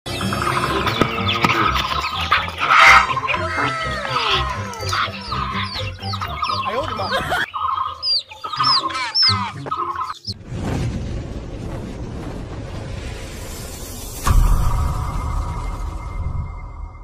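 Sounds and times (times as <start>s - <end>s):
chicks peeping: 0.2s - 10.4s
lower chick calls: 0.5s - 10.4s.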